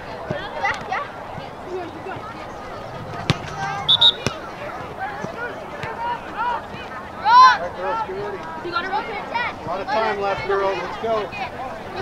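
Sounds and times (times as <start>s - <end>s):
distant voices: 0.1s - 7.2s
soccer ball kicks: 3.2s - 4.5s
high whistle blasts: 3.6s - 4.4s.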